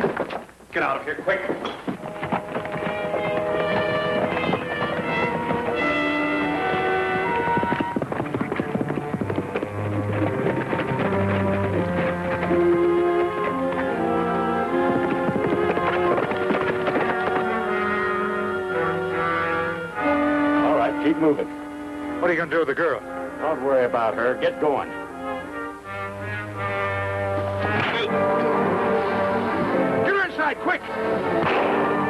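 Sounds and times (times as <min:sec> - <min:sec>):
horses' hooves galloping: 0:00.0 - 0:32.0
brass-led orchestral music: 0:02.0 - 0:32.0.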